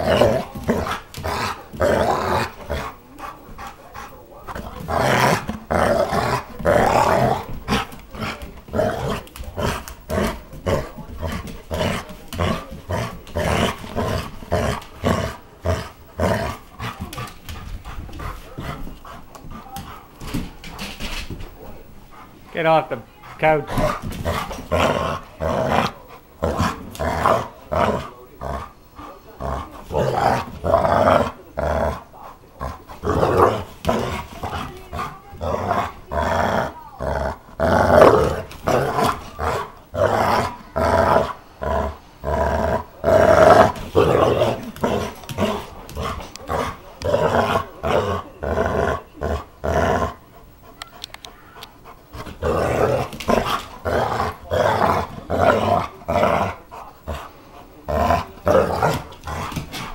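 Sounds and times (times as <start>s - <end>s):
dog growling in play: 0.0s - 22.4s, 23.2s - 50.7s, 51.7s - 59.9s.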